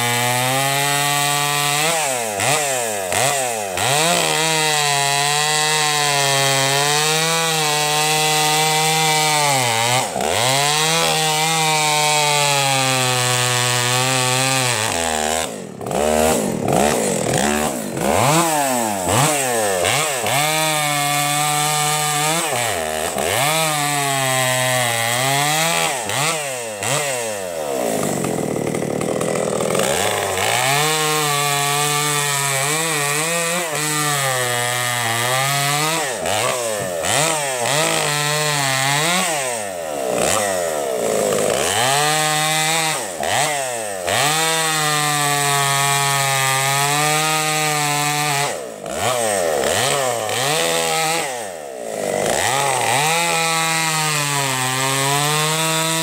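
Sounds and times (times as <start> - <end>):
chainsaw cutting logs: 0.0 - 56.0.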